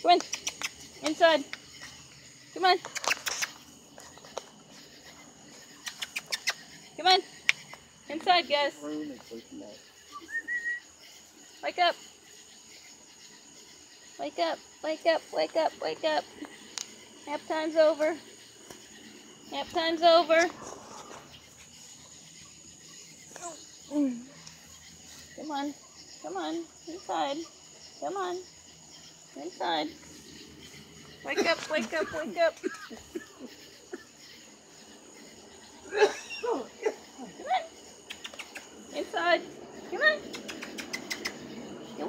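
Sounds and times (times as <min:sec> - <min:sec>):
crickets trilling: 0:00.0 - 0:42.0
night insects chirring: 0:00.0 - 0:42.0.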